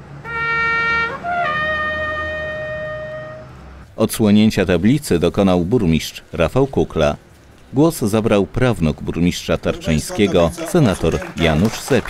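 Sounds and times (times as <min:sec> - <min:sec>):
trumpet holding a note: 0:00.2 - 0:03.6.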